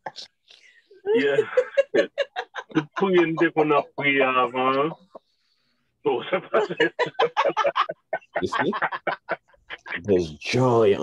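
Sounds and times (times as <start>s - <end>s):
person laughing hard: 1.1s - 4.0s, 6.4s - 10.0s.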